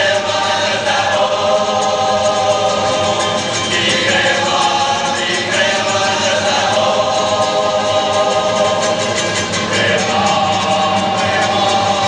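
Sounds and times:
lead voice singing: 0:00.0 - 0:12.0
male choir singing: 0:00.0 - 0:12.0
strummed guitars: 0:00.0 - 0:12.0.

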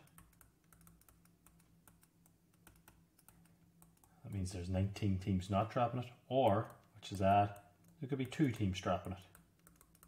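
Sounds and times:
stylus tapping on touchscreen: 0:00.0 - 0:04.5
low steady hum: 0:00.0 - 0:10.0.

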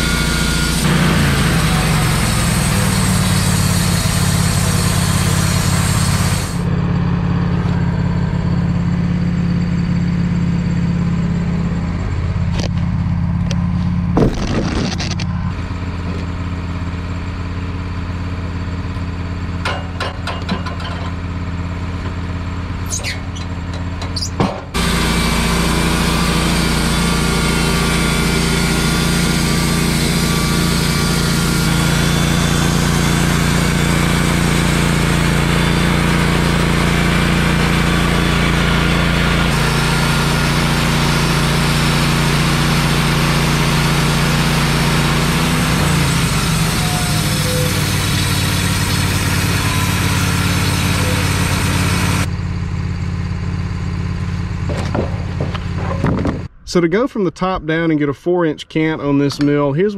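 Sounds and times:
sawmill engine running: 0:00.0 - 0:59.9.

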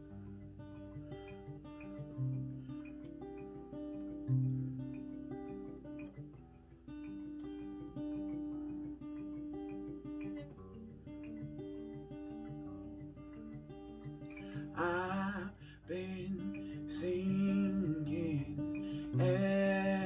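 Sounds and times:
acoustic guitar chords: 0:00.0 - 0:20.0.

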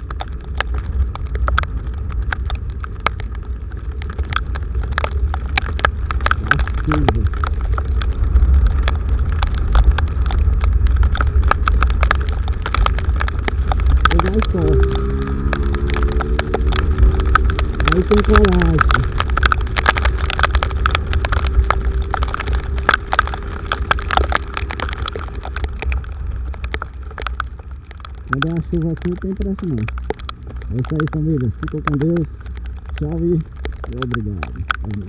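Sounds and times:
deep wind rumble: 0:00.0 - 0:35.0
heavy rain drops ticking on camera: 0:00.0 - 0:35.0.

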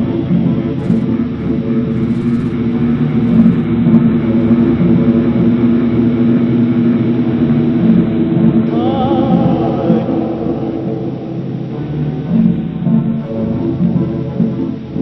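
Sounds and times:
low droning ambient music: 0:00.0 - 0:15.0.

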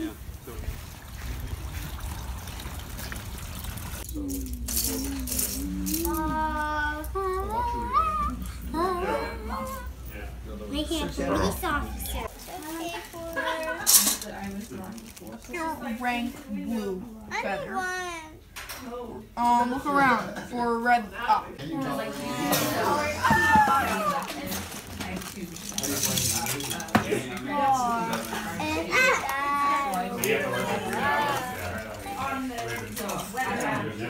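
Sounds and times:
plastic bricks rattling in bag: 0:23.9 - 0:26.9.

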